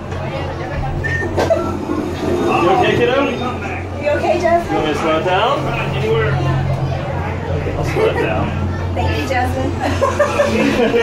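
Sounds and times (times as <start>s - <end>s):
ride humming: 0.0s - 11.0s
woman laughing: 9.8s - 11.0s.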